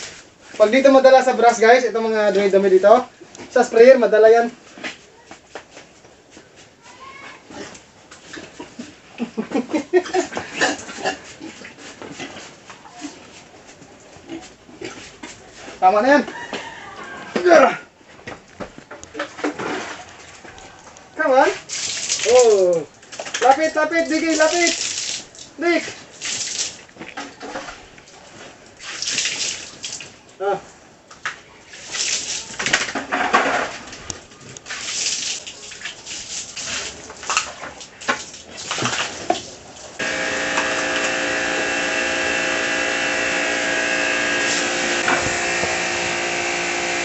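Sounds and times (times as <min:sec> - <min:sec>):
small clicks and scuffs: 0:04.7 - 0:08.9
pigs grunting: 0:10.1 - 0:13.2
water splashing on concrete: 0:21.5 - 0:30.2, 0:31.1 - 0:41.3.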